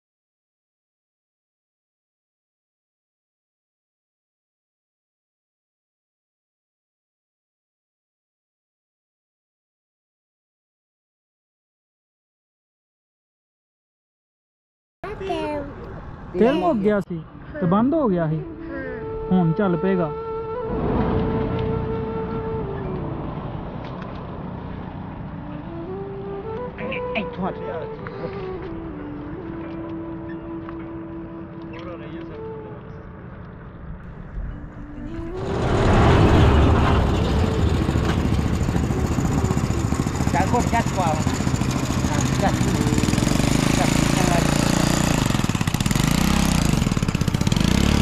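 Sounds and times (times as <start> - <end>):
motorcycle engine idling: 37.1 - 48.0.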